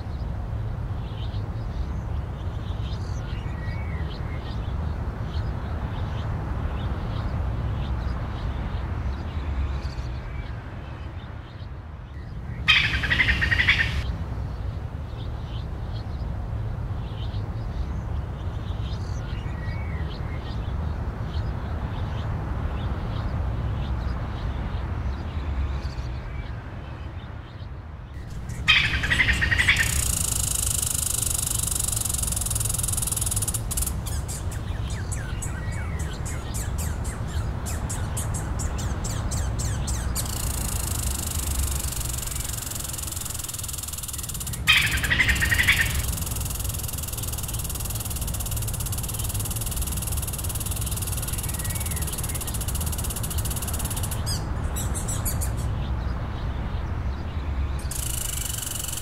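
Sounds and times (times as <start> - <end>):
birds chirping: 1.0 - 14.1, 17.0 - 59.0
steady high hiss: 28.2 - 35.5, 40.1 - 54.3, 57.8 - 59.0.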